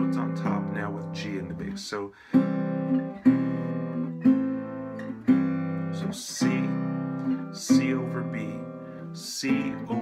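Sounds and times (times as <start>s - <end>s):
resonator guitar fingerpicked chords: 0.0s - 10.0s.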